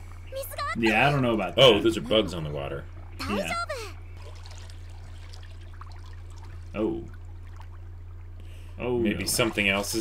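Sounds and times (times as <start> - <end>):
steady low hum: 0.0 - 10.0
water trickling: 0.0 - 10.0.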